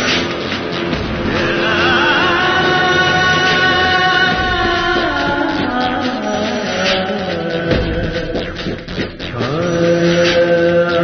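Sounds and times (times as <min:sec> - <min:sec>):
voice singing a long chanted note: 0:01.2 - 0:08.3.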